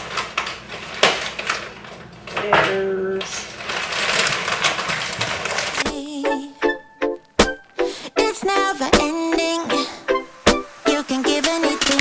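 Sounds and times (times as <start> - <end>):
plastic bag crinkling: 0.0 - 6.5
music with plucked notes: 5.9 - 12.0.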